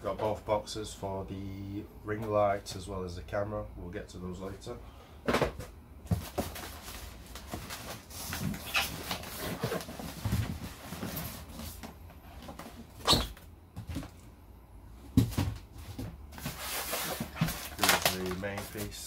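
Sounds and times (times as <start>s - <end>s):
polystyrene box rubbing and scraping: 16.4s - 18.0s.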